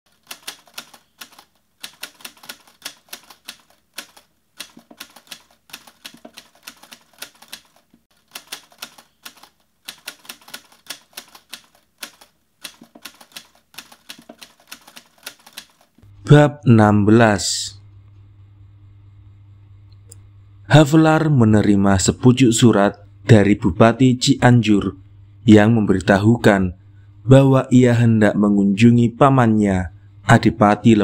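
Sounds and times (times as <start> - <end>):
book pages flicking clicks: 0.2 - 15.9.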